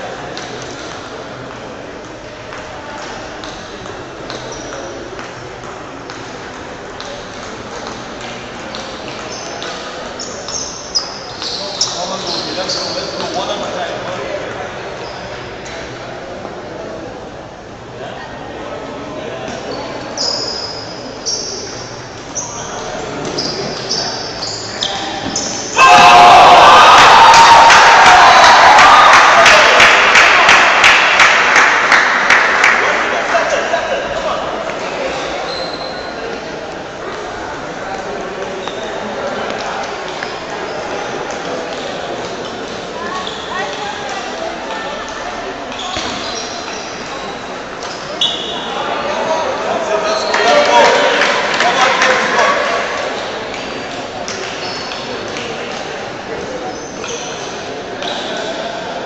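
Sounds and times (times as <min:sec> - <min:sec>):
spectators chatter: 0:00.0 - 0:59.0
spectators shouting: 0:25.7 - 0:30.7
spectators clapping: 0:26.8 - 0:33.5, 0:50.3 - 0:52.9.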